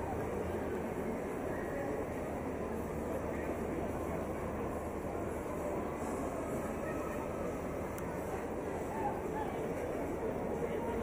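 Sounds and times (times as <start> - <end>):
crowd talking indistinctly: 0.0 - 11.0
low background hum: 0.0 - 11.0.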